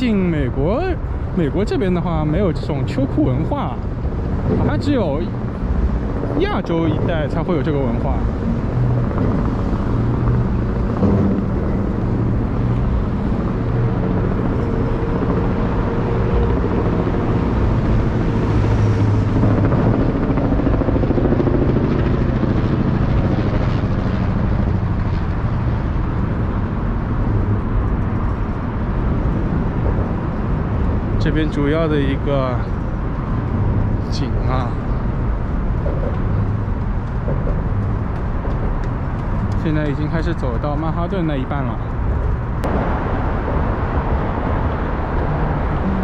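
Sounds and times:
loud traffic rumble: 0.0 - 46.0.

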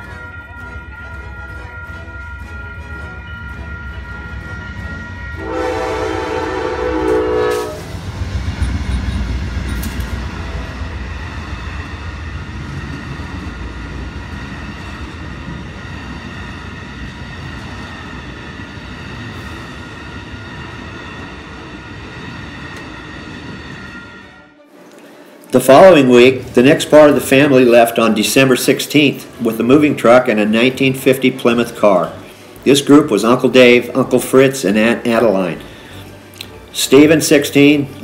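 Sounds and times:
crossing signal bell ringing: 0.0 - 7.3
train horn blast: 0.0 - 8.0, 23.8 - 25.2
wheels clacking on rails: 0.0 - 24.0
train cars rumbling: 0.0 - 38.0.

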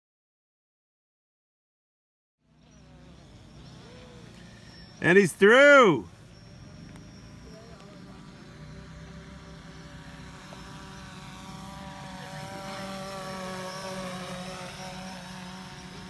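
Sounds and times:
drone propellers whining: 2.7 - 16.0.

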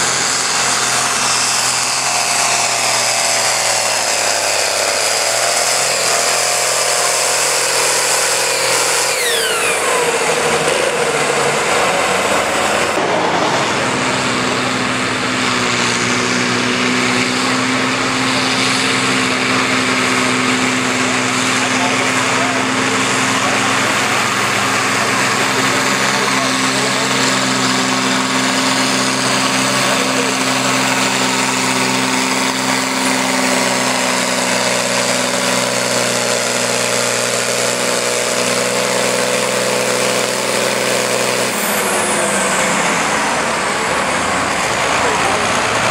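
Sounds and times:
tractor diesel engine at full power: 0.0 - 45.9.

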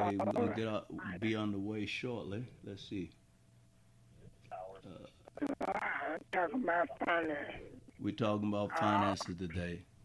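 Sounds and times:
person talking over phone line: 0.0 - 1.3, 4.5 - 7.8, 8.6 - 9.5.

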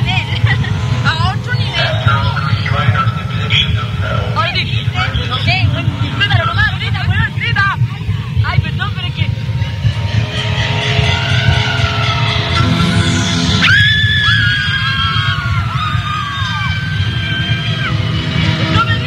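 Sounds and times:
high sustained cries: 0.0 - 7.2, 9.4 - 19.0
crowd rumble: 0.0 - 19.0
fans shrieking: 0.0 - 19.0.

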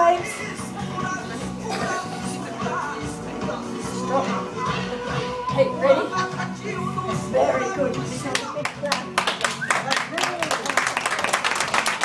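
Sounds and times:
group clapping hands: 8.2 - 12.0.

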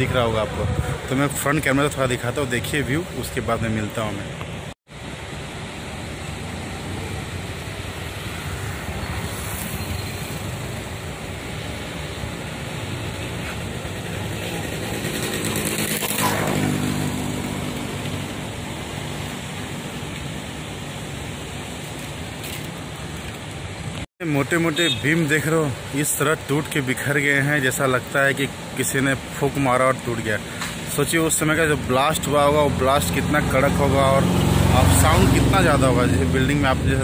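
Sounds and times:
road traffic noise: 0.0 - 37.0
vehicle passing close: 6.2 - 19.5, 32.6 - 36.9.

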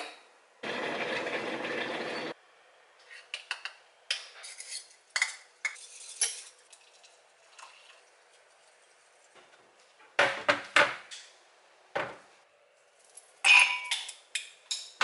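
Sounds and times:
glass cup clinks: 13.5 - 14.0.

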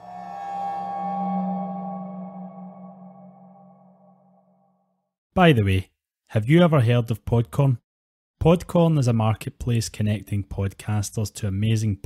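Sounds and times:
ringing drone music: 0.0 - 4.6.

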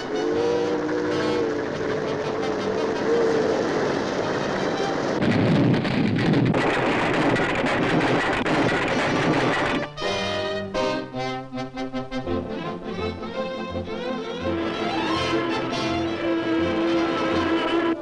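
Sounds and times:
steam train whistle: 0.0 - 4.0, 14.5 - 18.0
steam train running: 0.0 - 10.4, 12.4 - 18.0.

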